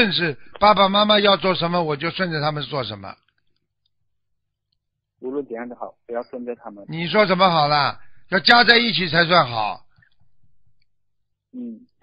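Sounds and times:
man speaking: 0.0s - 3.2s, 5.2s - 9.9s.

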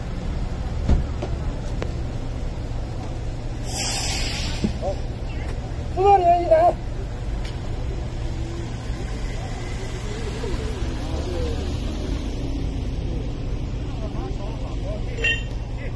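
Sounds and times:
car engine passing slowly: 4.5s - 15.9s
faint voices: 4.7s - 15.9s.

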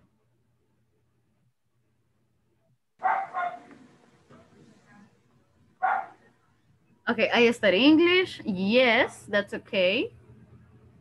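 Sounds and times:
dog barking: 3.0s - 3.7s, 5.8s - 6.2s.

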